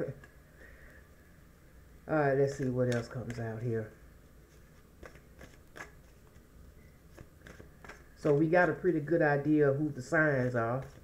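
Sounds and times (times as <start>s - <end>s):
cards being shuffled: 2.4s - 3.6s, 4.5s - 6.5s, 7.1s - 8.8s, 10.3s - 11.0s.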